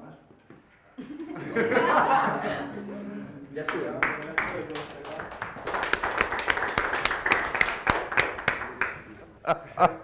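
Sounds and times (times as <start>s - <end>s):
audience applauding: 3.7s - 9.1s.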